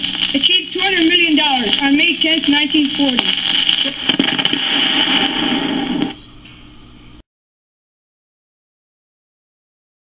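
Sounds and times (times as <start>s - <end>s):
record clicks: 0.0s - 6.6s
record surface hiss and rumble: 0.0s - 7.2s.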